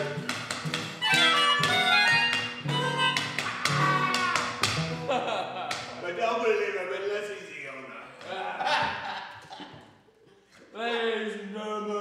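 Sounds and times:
reedy melodica notes: 0:00.0 - 0:04.1
acoustic guitar strumming: 0:00.0 - 0:05.2.

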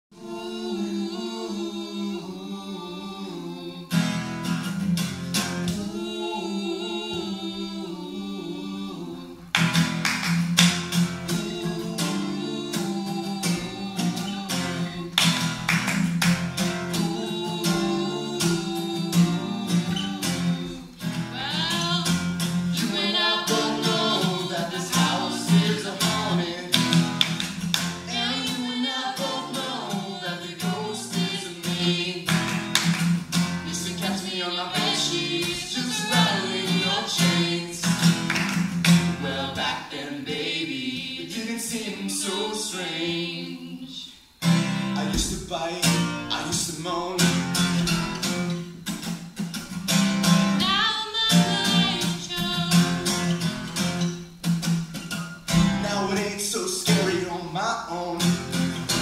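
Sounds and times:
acoustic guitar strumming: 0:03.9 - 0:07.9, 0:09.4 - 0:43.6, 0:44.4 - 0:59.0
person singing: 0:05.7 - 0:09.5, 0:11.3 - 0:15.4, 0:16.9 - 0:27.0, 0:28.1 - 0:32.5, 0:33.6 - 0:38.0, 0:50.6 - 0:53.2, 0:55.8 - 0:58.3.

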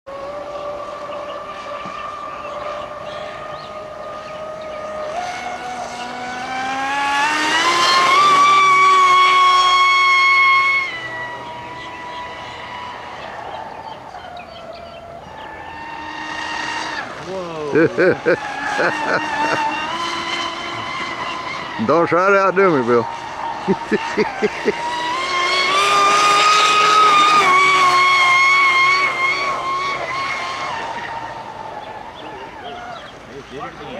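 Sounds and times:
high-pitched electric motor whine: 0:00.1 - 0:33.9.

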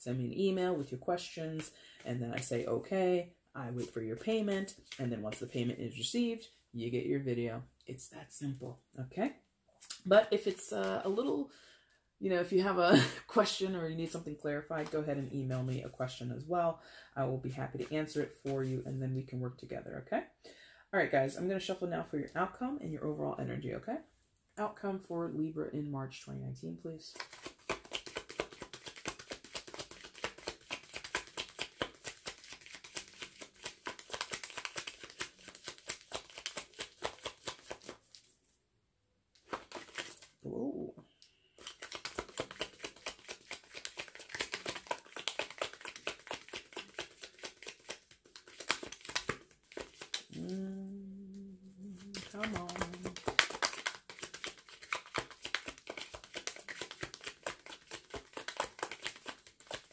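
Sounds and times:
cards being shuffled: 0:03.8 - 0:05.5, 0:14.7 - 0:15.9, 0:27.1 - 0:38.4, 0:39.4 - 0:40.4, 0:41.6 - 0:59.9
person humming: 0:50.3 - 0:53.3.

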